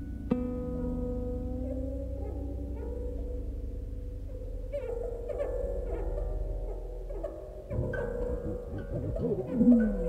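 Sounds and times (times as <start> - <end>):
guitar notes gliding: 0.0 - 10.0.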